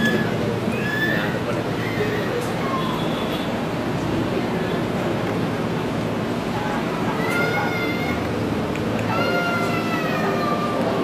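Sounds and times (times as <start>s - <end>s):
high-pitched wailing cry: 0.0s - 2.8s, 7.1s - 8.3s, 9.1s - 11.0s.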